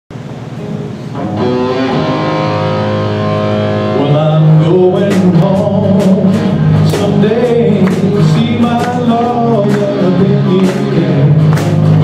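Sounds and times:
band holding sustained chord: 0:00.6 - 0:04.6.

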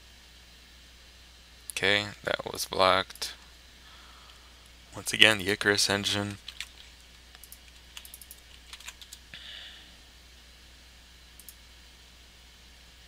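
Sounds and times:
keyboard and mouse clicks: 0:06.2 - 0:09.2.

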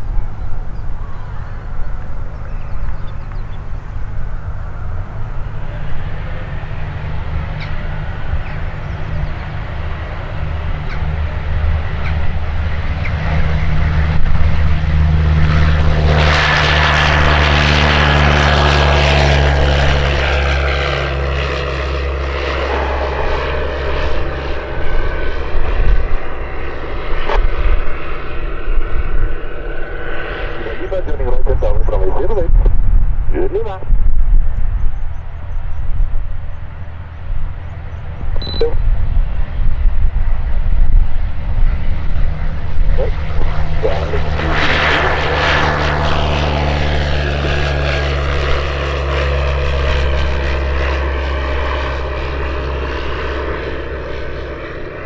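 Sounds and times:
light aircraft engine and propeller: 0:00.0 - 0:55.0.

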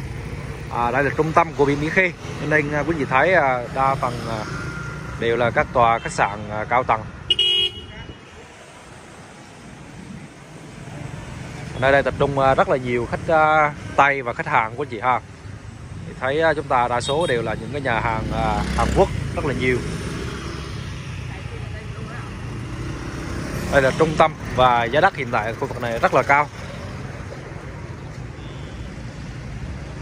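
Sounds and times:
cars passing: 0:00.0 - 0:30.0
low hum of street traffic: 0:00.0 - 0:30.0
low rumble of engines and tyres: 0:00.0 - 0:30.0
motor scooters passing: 0:00.0 - 0:30.0
vehicle horn toot: 0:07.3 - 0:08.2, 0:28.4 - 0:28.8.

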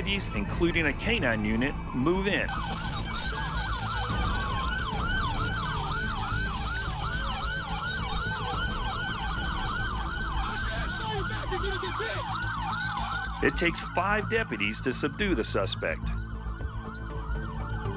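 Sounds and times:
police siren yelping: 0:02.5 - 0:14.0.

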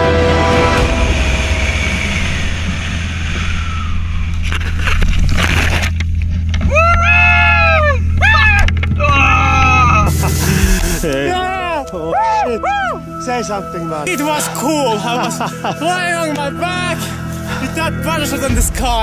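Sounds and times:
wind rushing over microphone: 0:01.0 - 0:06.7
man yelling: 0:11.0 - 0:13.0.

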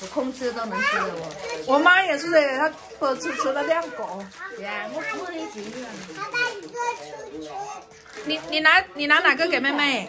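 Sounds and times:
people talking: 0:00.0 - 0:10.0
small child's high voice: 0:03.2 - 0:08.0.

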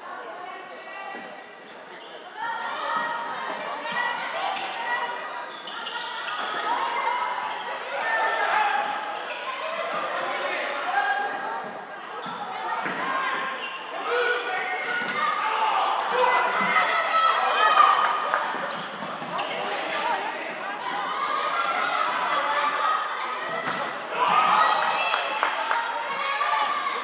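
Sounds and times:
voices calling out in hall: 0:00.0 - 0:27.0.

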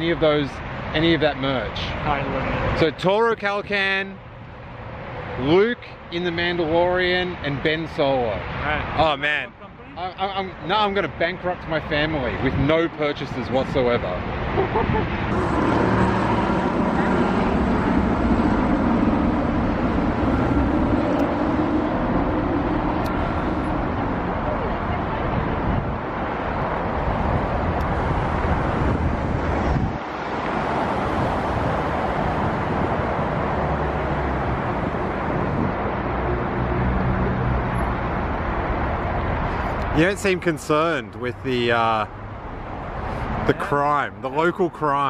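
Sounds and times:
helicopter flying overhead: 0:10.6 - 0:40.4.

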